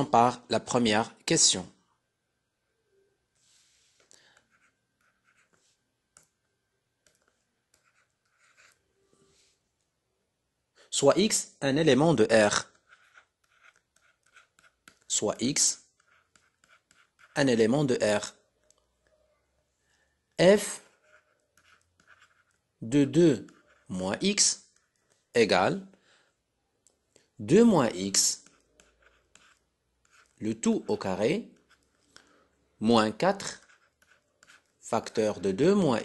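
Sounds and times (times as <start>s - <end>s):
stylus tapping and scratching: 4.0s - 8.8s, 12.2s - 18.8s, 20.6s - 25.3s, 27.1s - 32.3s, 33.1s - 35.4s
person speaking: 10.8s - 18.4s, 20.3s - 26.0s, 27.4s - 36.0s.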